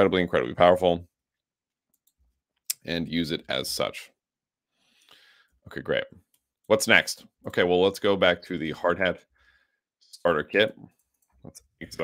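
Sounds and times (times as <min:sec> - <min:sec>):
person speaking: 0:02.7 - 0:04.1, 0:10.1 - 0:12.0.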